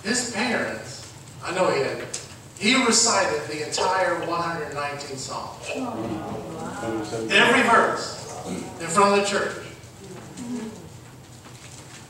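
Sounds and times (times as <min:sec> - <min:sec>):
low hummed voice murmur: 0:03.2 - 0:11.4.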